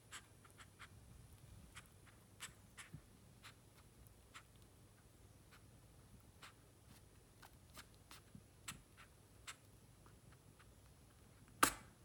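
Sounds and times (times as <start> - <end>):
squirrel grooming clicks and scratches: 0.0 - 11.8.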